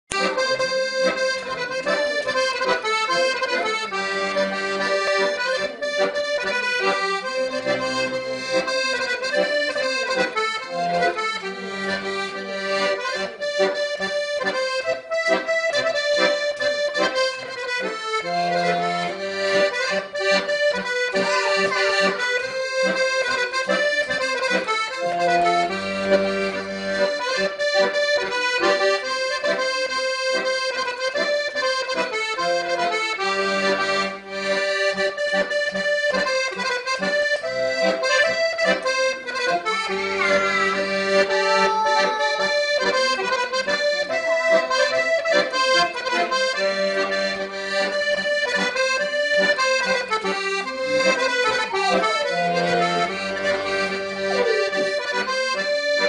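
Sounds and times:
accordion playing folk tune: 0.0 - 56.0.

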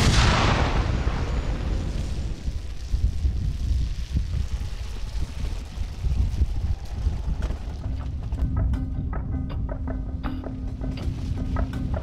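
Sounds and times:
wind buffeting microphone: 1.5 - 9.8.

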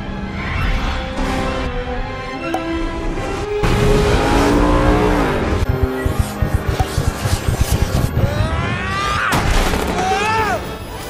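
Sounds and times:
film music: 0.0 - 11.0
race car engine at high revs: 3.6 - 8.4.

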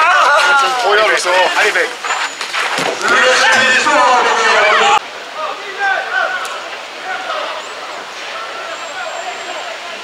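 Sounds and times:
murmur of spectators: 2.9 - 10.0.

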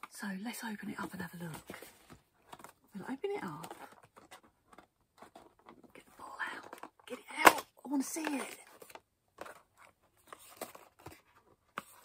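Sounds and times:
cardboard rustling and tapping: 3.4 - 6.0, 6.6 - 12.0.

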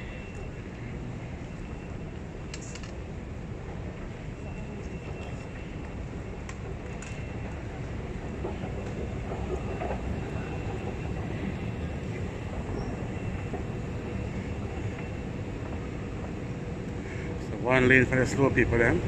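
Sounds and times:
low rumble of underground station: 0.0 - 19.0.

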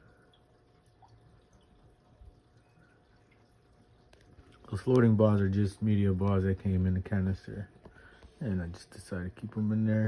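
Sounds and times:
water drips and bubbles: 0.0 - 10.0.

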